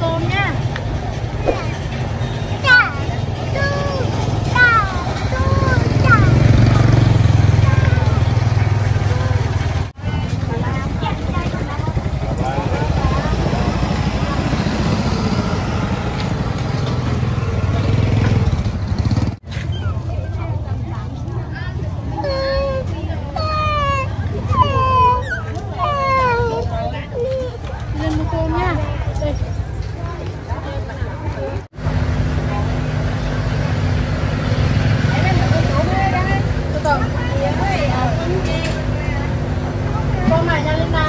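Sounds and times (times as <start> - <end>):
people's voices: 0.0 - 18.4, 19.5 - 31.7, 32.3 - 41.0
motorbike engines passing: 0.0 - 41.0.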